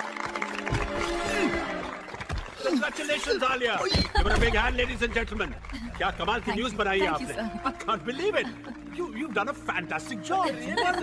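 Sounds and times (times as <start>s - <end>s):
voices talking: 2.8s - 11.0s.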